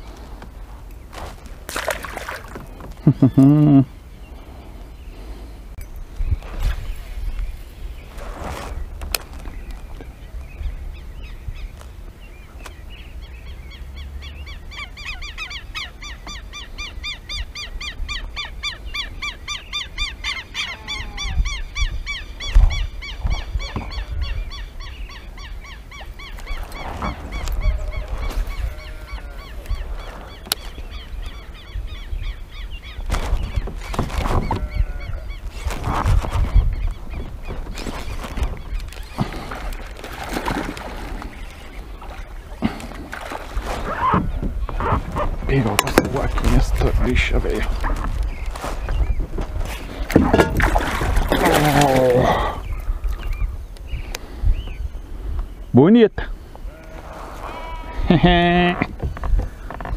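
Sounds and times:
birds calling: 0.0s - 59.9s
low wind rumble: 0.0s - 59.9s.

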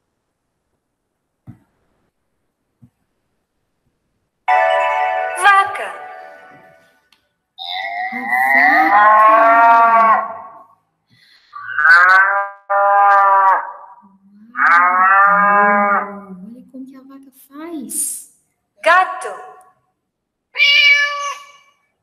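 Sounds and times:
cow mooing: 8.1s - 10.6s, 11.6s - 16.1s.

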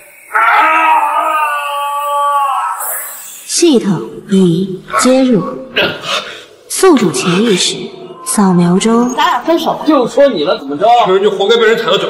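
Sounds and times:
man screaming in pain: 0.3s - 3.1s.

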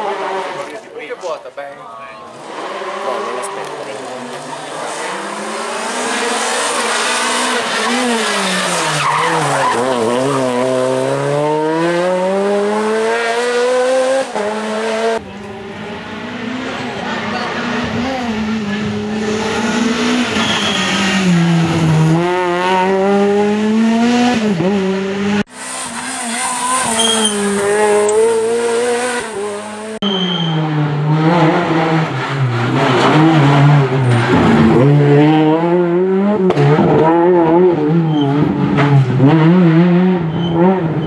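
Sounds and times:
rally car engine revving: 0.0s - 1.3s, 2.2s - 41.0s.

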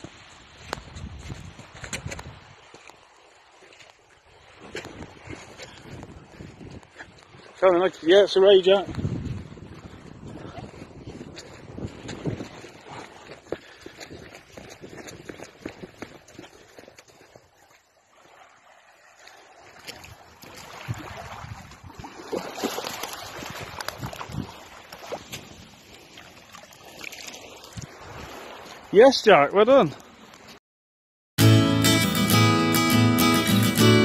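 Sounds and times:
wind buffeting microphone: 0.0s - 2.8s, 4.4s - 17.4s, 19.9s - 22.3s, 23.1s - 24.8s
small waves washing on sand: 0.0s - 30.6s.

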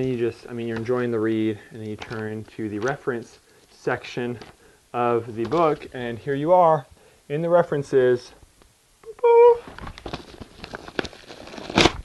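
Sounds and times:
paper and plastic crinkling: 0.0s - 4.6s, 5.3s - 6.1s, 9.6s - 12.0s.

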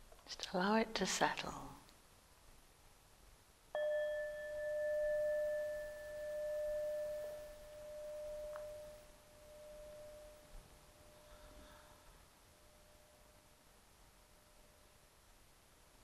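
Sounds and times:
singing bowl struck and ringing: 3.8s - 11.2s.

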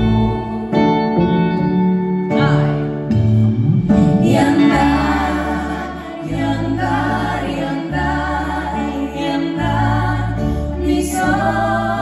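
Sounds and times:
acoustic guitar: 0.0s - 12.0s
low bass line: 0.0s - 12.0s
drums: 2.3s - 4.9s
women singing in harmony: 4.1s - 12.0s.

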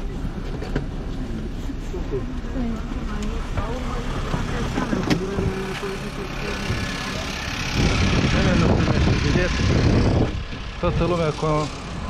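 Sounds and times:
minibus engine running: 0.0s - 12.0s
street traffic rumble: 0.0s - 12.0s
voices: 0.0s - 12.0s.

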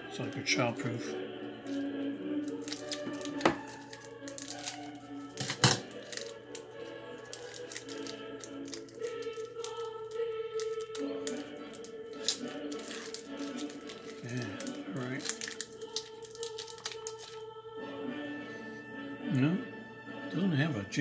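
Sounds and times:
background music: 0.0s - 21.0s
wrapper crinkling: 1.7s - 17.4s.

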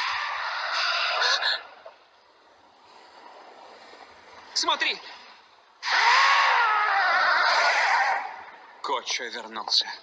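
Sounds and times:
giant bird rasping shriek: 0.0s - 1.8s, 5.8s - 8.5s.

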